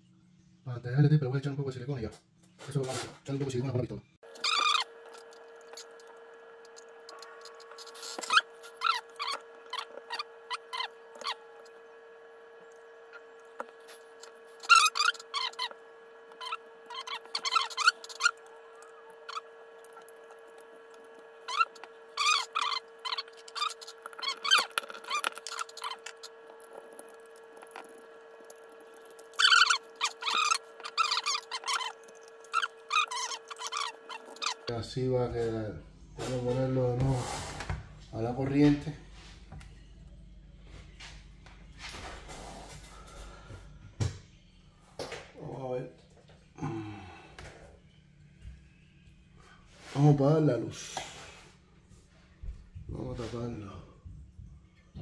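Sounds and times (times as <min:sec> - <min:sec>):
steady background hum: 0:00.0 - 0:55.0
hot glue gun squeaking: 0:04.3 - 0:06.1, 0:12.7 - 0:20.4, 0:21.4 - 0:34.7.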